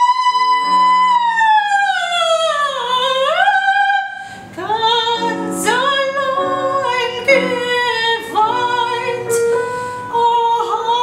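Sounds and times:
operatic soprano singing: 0.0 - 11.0
piano chords: 0.0 - 11.0.

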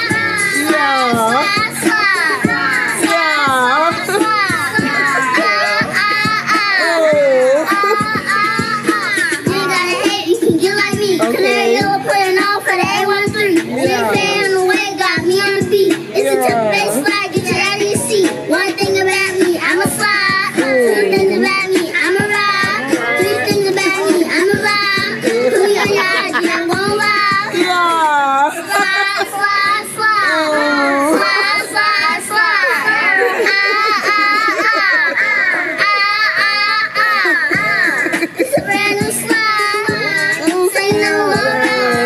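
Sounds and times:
hip hop track with sung vocals: 0.0 - 42.0.

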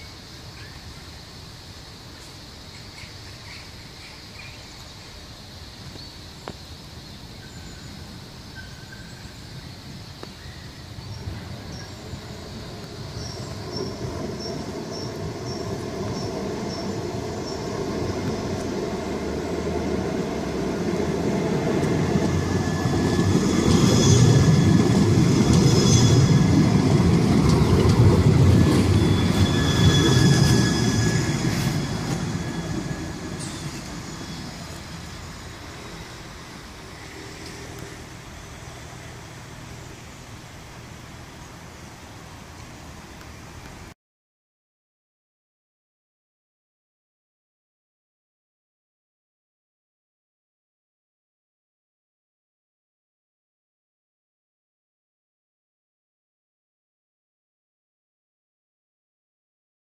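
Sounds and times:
tram rumbling on track: 7.2 - 43.1
high wheel squeal: 21.4 - 39.4.

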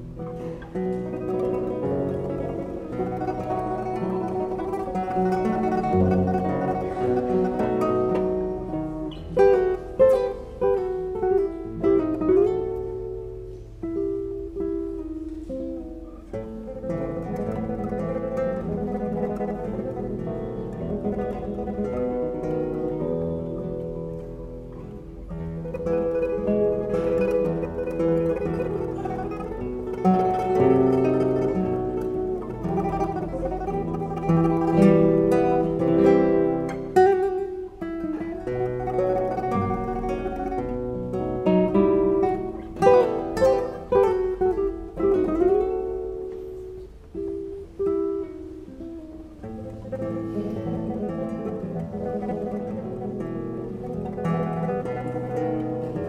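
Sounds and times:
classical guitars playing: 0.0 - 56.0.

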